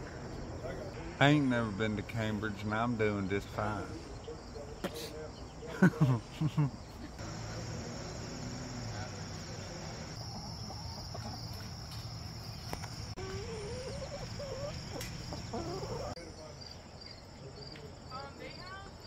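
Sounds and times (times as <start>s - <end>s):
insects trilling: 0.3s - 19.0s
hens calling: 7.2s - 16.2s.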